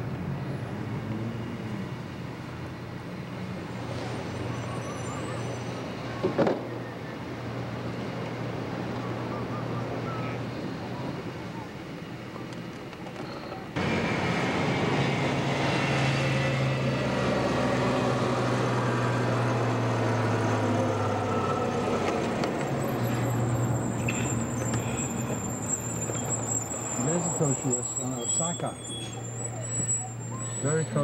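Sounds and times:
car engine hum: 0.0s - 31.0s
road noise: 0.0s - 31.0s.

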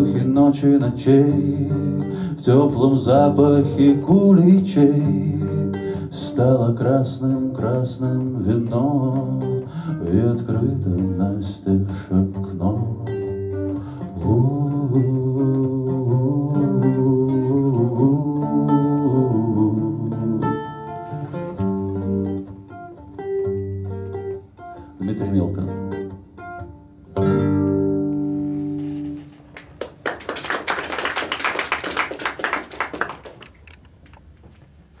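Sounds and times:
acoustic guitars playing: 0.0s - 30.0s
audience applause: 29.6s - 33.7s.

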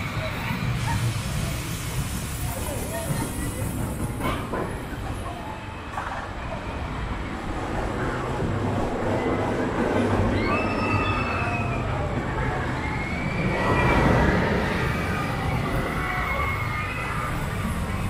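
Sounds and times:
roller coaster rumbling on track: 0.0s - 18.0s
high squeals: 10.2s - 18.0s.

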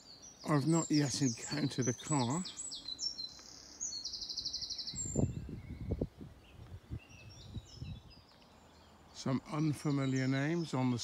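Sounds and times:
bird chirps: 0.0s - 11.0s
songbird trilling: 0.0s - 11.0s
wind buffeting microphone: 4.4s - 8.3s.

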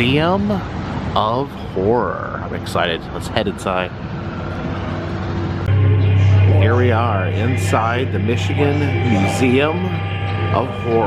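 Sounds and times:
street traffic: 0.0s - 11.0s
low droning background music: 3.9s - 11.0s.

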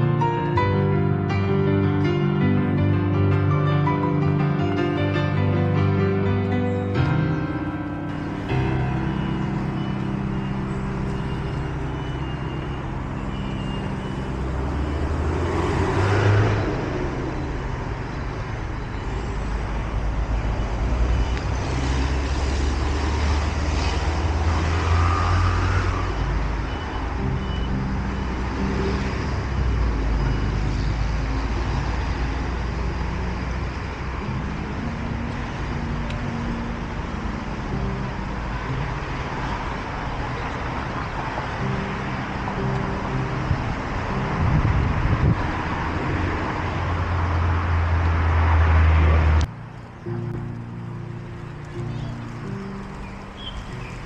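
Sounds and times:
road traffic rumble: 0.0s - 54.0s
vehicle passing: 6.3s - 54.0s.

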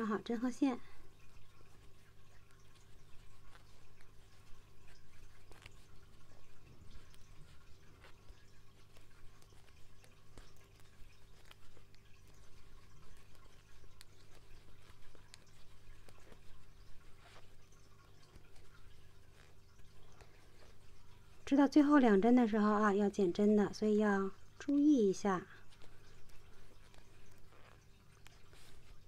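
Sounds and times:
yarn rustling: 0.0s - 29.0s.

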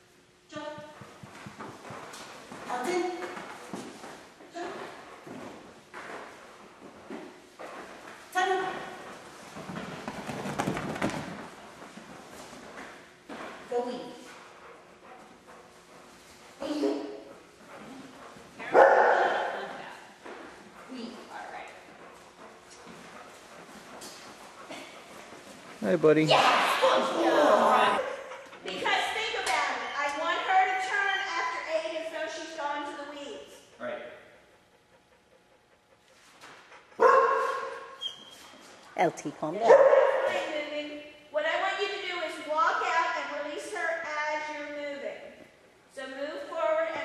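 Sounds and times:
dog paws thudding on floor: 0.8s - 13.7s
dog barking: 18.6s - 19.7s, 37.0s - 37.9s, 39.6s - 40.5s.

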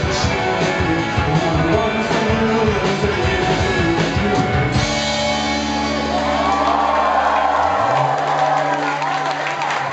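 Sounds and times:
rock band closing chord: 0.1s - 9.0s
crowd cheering: 5.5s - 9.9s.

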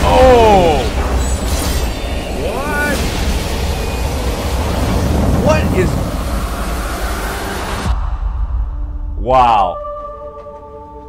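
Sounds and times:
dense low rumbling: 3.1s - 9.5s.

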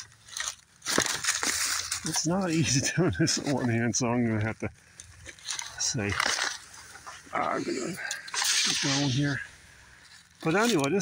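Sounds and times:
rustling of dry leaves: 0.0s - 11.0s.

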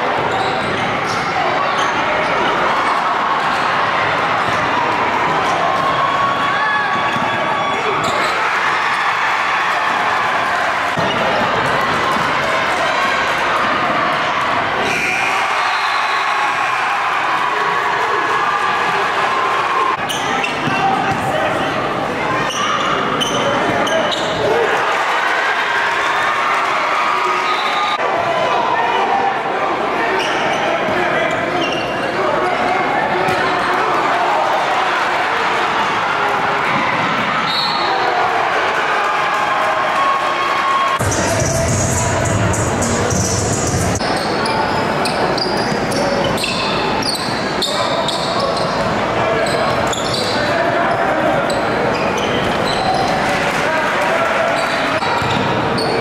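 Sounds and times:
spectators talking: 0.0s - 56.0s.

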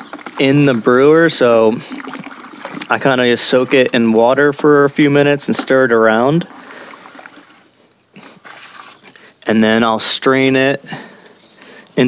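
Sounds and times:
water sloshing in bucket: 0.0s - 10.5s.

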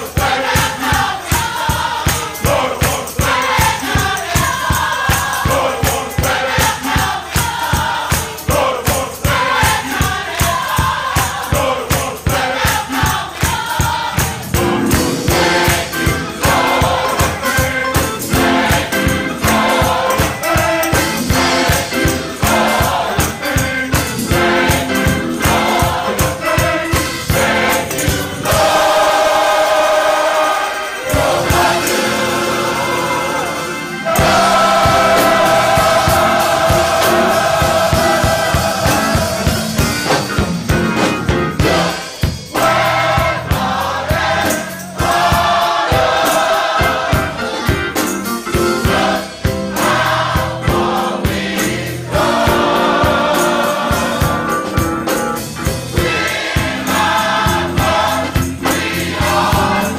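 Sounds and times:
gospel choir singing: 0.0s - 59.9s
quick percussive beat: 0.0s - 59.9s.

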